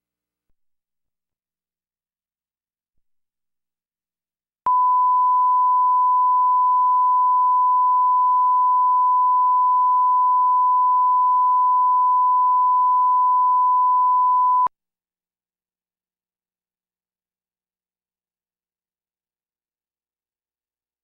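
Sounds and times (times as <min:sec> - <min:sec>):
steady test tone beep: 0:04.7 - 0:14.7.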